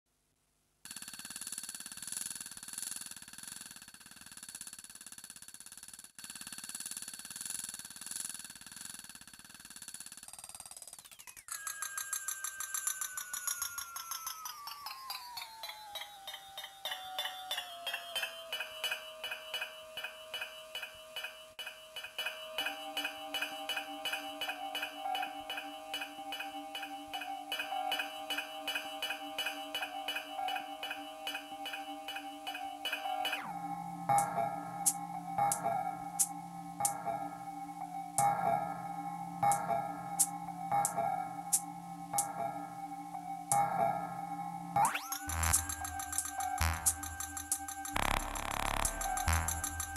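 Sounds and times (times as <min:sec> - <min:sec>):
pulsing tones sliding down in pitch: 0:12.9 - 0:20.9, 0:44.2 - 0:49.9
high repeating sampled tone: 0:44.7 - 0:49.9
low synth note: 0:44.8 - 0:47.3, 0:48.0 - 0:49.9.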